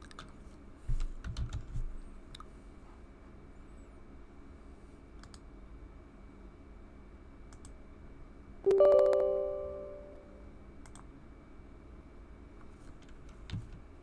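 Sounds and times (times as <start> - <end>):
system alert chime: 8.7 - 10.4.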